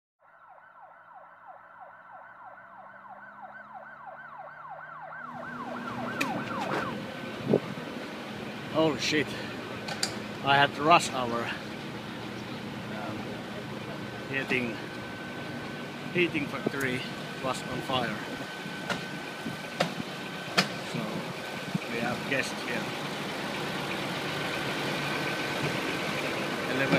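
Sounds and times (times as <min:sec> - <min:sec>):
siren yelping: 0:00.2 - 0:08.0
diesel engine idling: 0:04.6 - 0:26.9
sharp knocks: 0:19.8 - 0:20.8.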